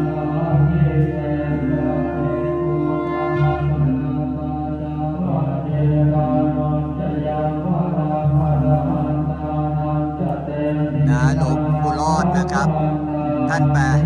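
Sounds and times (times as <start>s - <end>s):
monks chanting in unison: 0.0s - 14.0s.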